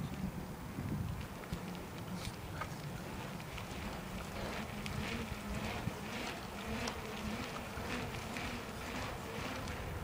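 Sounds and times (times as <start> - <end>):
steady low hum: 1.6 - 10.0.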